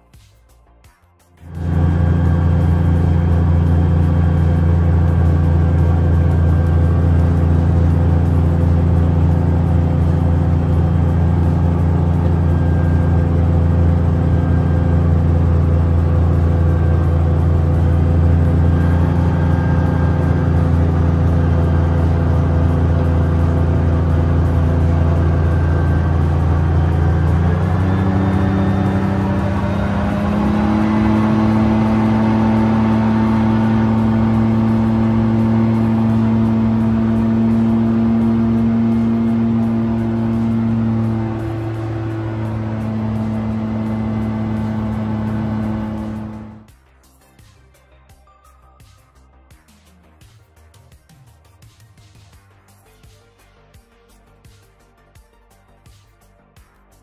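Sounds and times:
light aircraft engine droning: 1.4 - 46.7.

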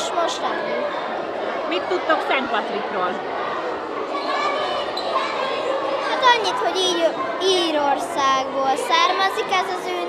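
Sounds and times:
children chattering and calling out: 0.0 - 10.0.

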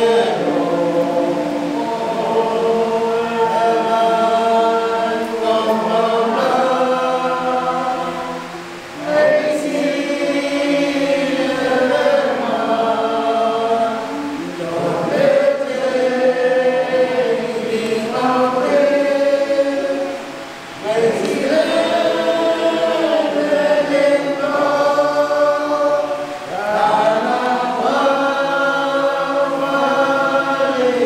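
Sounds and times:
men singing a hymn unaccompanied: 0.0 - 31.0.

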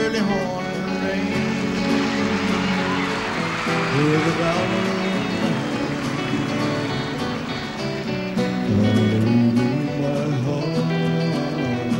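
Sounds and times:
live country band with guitar: 0.0 - 11.9.

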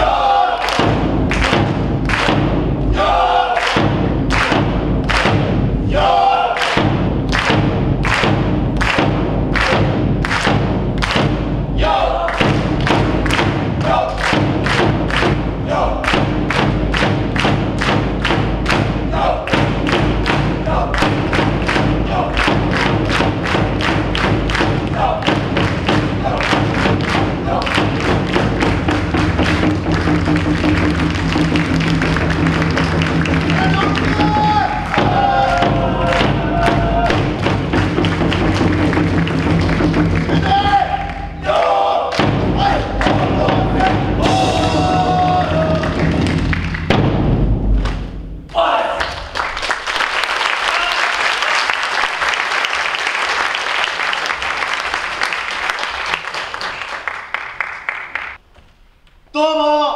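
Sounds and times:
heavy drum beat: 0.0 - 48.6
brass band playing: 26.0 - 46.6.

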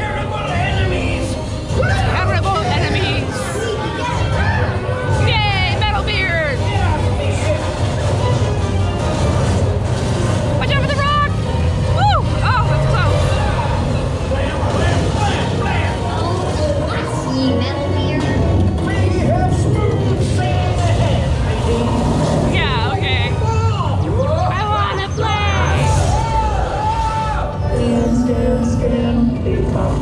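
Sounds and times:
ride soundtrack music: 0.0 - 30.0
deep steady rumble: 4.7 - 24.6.

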